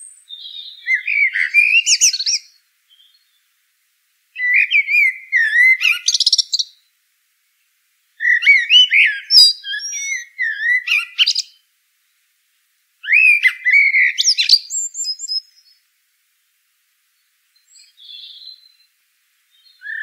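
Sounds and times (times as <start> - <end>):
songbird warbling: 0.0 - 3.4, 4.4 - 6.8, 8.2 - 11.6, 13.0 - 15.8, 17.6 - 18.9, 19.5 - 20.0.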